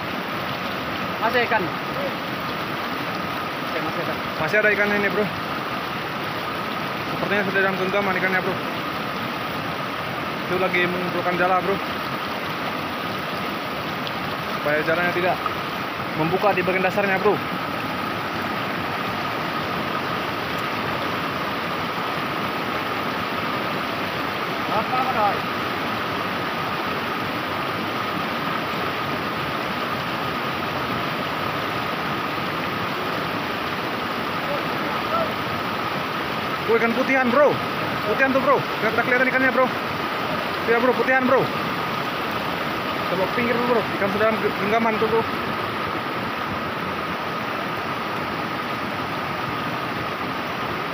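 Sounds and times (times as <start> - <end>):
river water rushing over rapids: 0.0 - 50.9.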